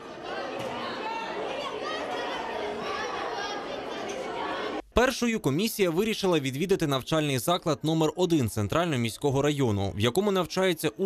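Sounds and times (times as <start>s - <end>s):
children chattering: 0.0s - 4.8s.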